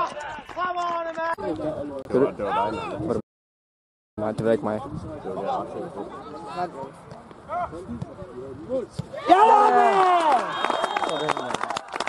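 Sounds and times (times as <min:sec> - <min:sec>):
footballers shouting: 0:09.0 - 0:11.5.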